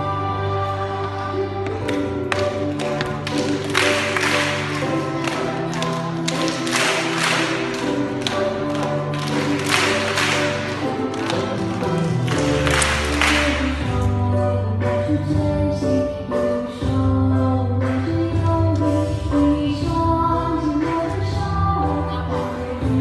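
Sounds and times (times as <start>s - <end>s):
music with sustained notes: 0.0s - 23.0s
crowd clapping along: 1.6s - 14.0s.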